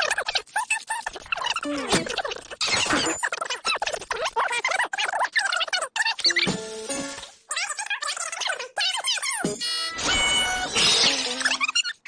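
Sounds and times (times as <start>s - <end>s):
high squeaky sped-up voices: 0.0s - 6.6s, 7.2s - 12.0s
cartoon music: 9.1s - 12.0s.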